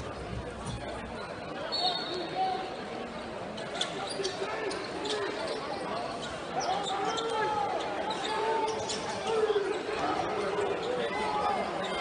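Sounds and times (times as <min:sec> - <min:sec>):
murmur of spectators: 0:00.0 - 0:12.0.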